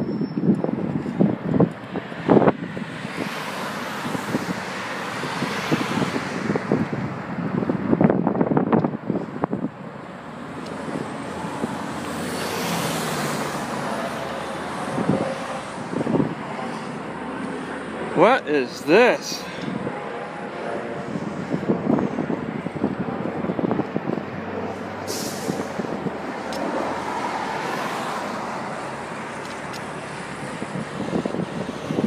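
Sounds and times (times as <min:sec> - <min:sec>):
cars passing: 0:00.0 - 0:32.0.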